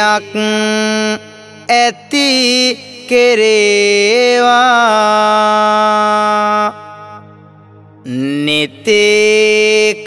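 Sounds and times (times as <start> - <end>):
monk chanting: 8.0 - 10.0.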